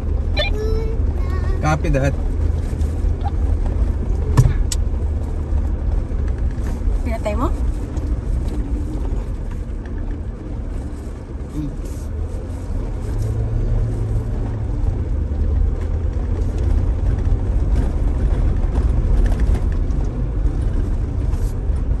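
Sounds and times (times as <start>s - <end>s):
engine and tyres rumbling: 0.0s - 22.0s.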